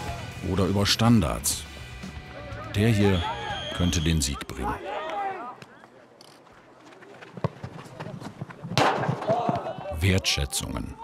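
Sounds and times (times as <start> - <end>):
players shouting: 2.3 - 6.1, 9.0 - 11.0.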